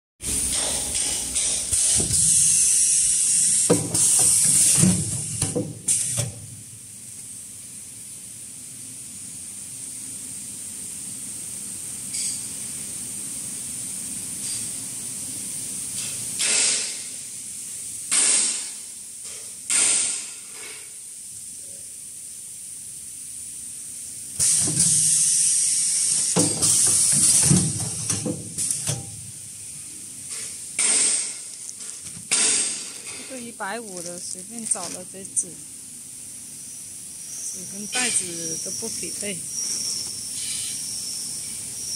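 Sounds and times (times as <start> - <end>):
packing machine hissing: 0.2 - 6.5, 24.3 - 35.7, 36.4 - 41.9.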